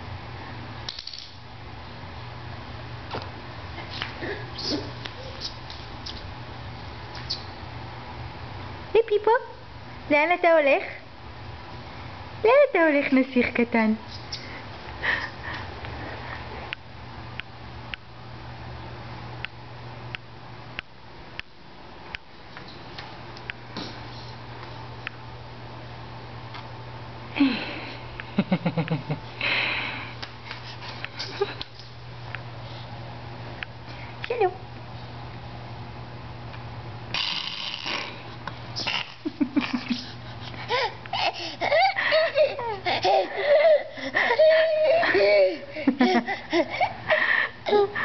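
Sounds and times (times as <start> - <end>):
baby making rasping hissing noise: 37.1 - 38.2, 38.8 - 39.2.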